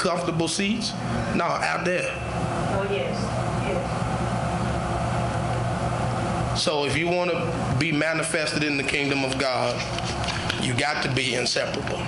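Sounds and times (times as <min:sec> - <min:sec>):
constant hiss: 0:00.0 - 0:12.0.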